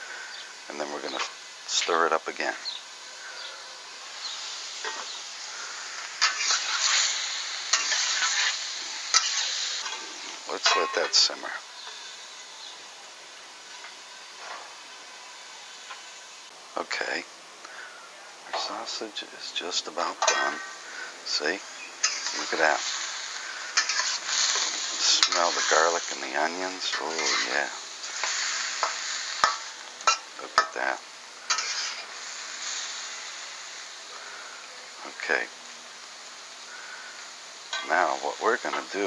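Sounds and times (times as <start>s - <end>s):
food sizzling in a wok: 0.0s - 39.0s
metal spatula scraping pan: 6.2s - 12.2s, 20.1s - 21.4s, 22.0s - 30.8s, 31.5s - 32.8s.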